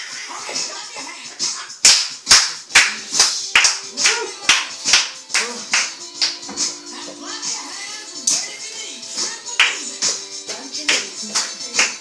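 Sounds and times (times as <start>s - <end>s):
dance music: 0.0s - 12.0s
rhythmic hand clapping: 1.4s - 12.0s.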